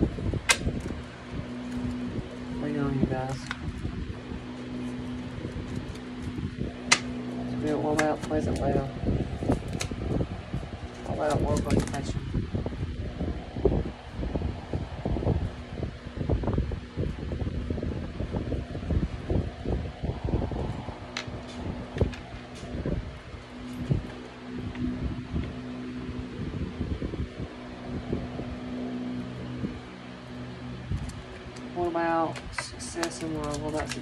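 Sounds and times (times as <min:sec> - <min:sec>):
fan-like hum: 0:00.0 - 0:34.0
low rumbling: 0:00.0 - 0:34.0
cards clicking: 0:05.6 - 0:08.8, 0:10.9 - 0:12.1, 0:31.0 - 0:34.0.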